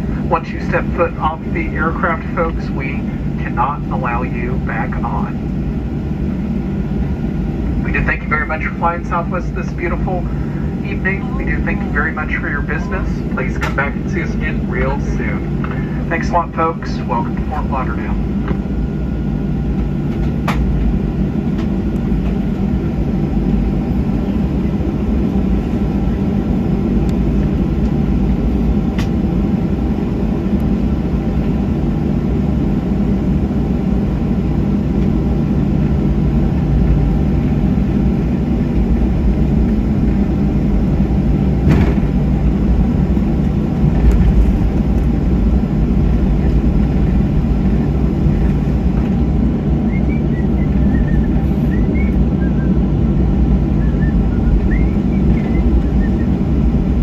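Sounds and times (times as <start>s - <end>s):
aircraft engines at taxi power: 0.0s - 57.0s.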